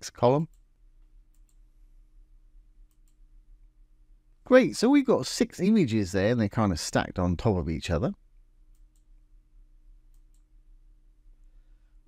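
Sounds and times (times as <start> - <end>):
person speaking: 0.0 - 0.7, 4.4 - 8.2
low steady hum: 0.0 - 12.0
computer mouse clicks: 1.3 - 1.6, 2.8 - 3.2, 8.7 - 9.1, 10.1 - 10.5.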